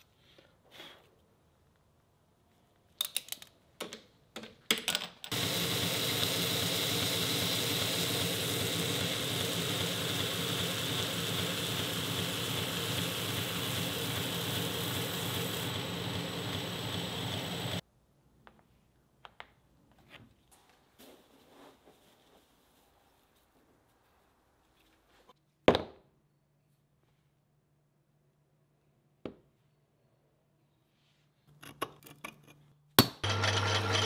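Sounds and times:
belt grinder grinding metal: 0:05.3 - 0:17.8, 0:33.2 - 0:34.0.

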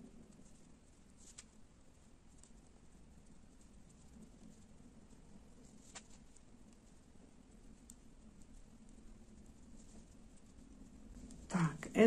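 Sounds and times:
faint yarn handling: 0:00.0 - 0:12.0.

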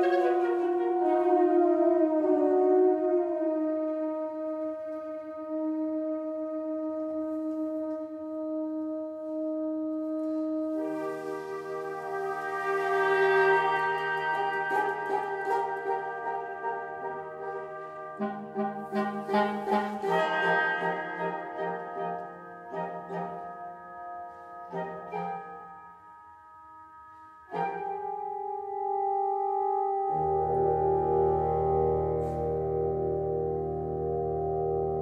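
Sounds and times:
wind ensemble chamber music: 0:00.0 - 0:35.0.

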